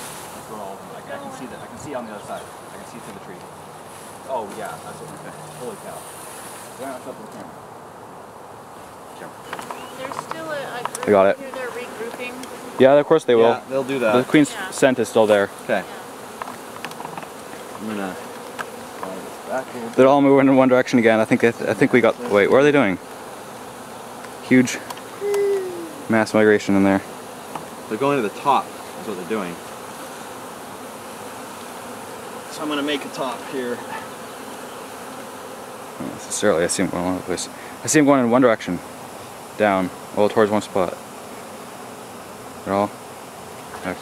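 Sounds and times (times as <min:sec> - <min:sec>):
bees buzzing: 0:00.0 - 0:44.0.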